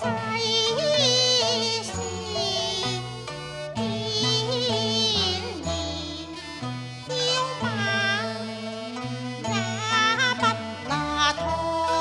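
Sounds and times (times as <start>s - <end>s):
woman singing opera with vibrato: 0.0s - 8.5s, 9.4s - 12.0s
instrumental accompaniment: 0.0s - 12.0s.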